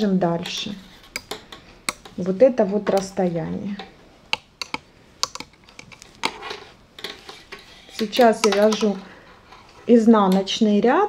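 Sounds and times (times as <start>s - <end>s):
metal knitting needles clicking: 3.8s - 6.3s, 7.0s - 9.0s.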